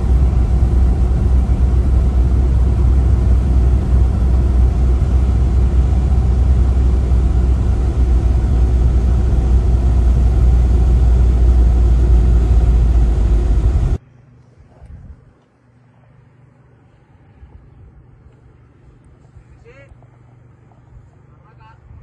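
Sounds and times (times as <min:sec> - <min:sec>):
car engine and tyres rumbling: 0:00.0 - 0:21.1.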